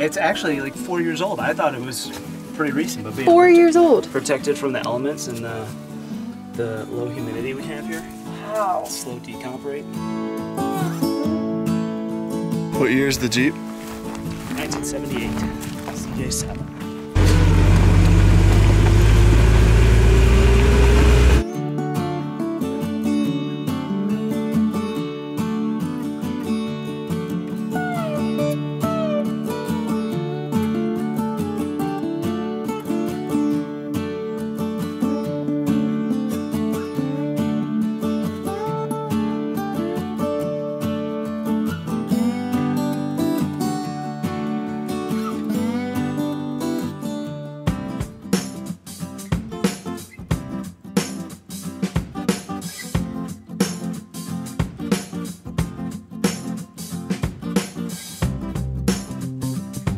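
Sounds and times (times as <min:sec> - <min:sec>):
strummed acoustic guitar music: 0:00.0 - 0:59.9
engine revving from inside cab: 0:17.2 - 0:21.4.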